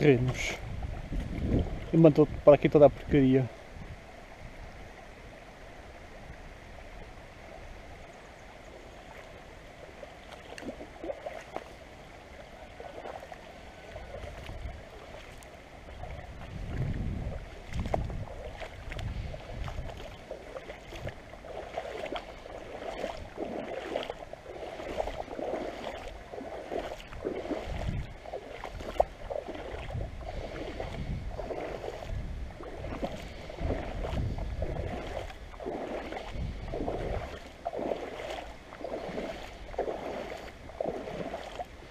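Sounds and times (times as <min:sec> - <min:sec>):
river water rippling: 0:00.0 - 0:41.9
splashing through water: 0:08.6 - 0:41.9.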